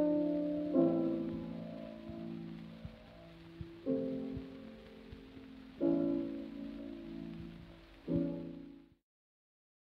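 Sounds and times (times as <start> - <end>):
record hiss: 0.0 - 9.0.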